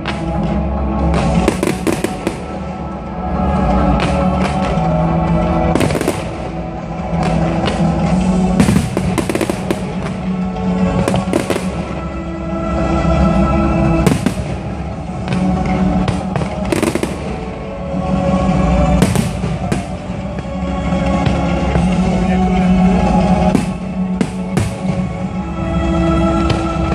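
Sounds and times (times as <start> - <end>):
fireworks bursting and crackling: 0.0 - 2.8, 3.8 - 12.2, 13.9 - 22.0, 23.2 - 25.3
music: 0.0 - 26.9.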